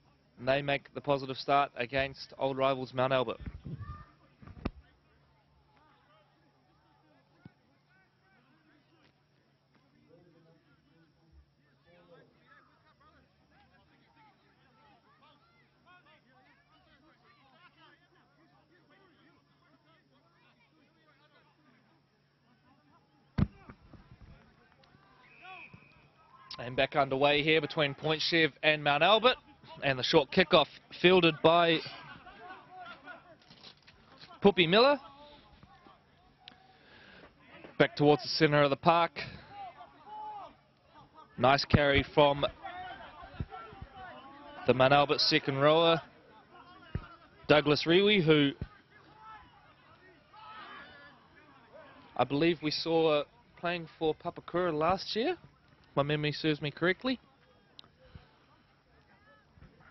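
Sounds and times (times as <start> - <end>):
distant voices of players and spectators: 0.0 - 59.9
outdoor background hiss: 0.0 - 59.9.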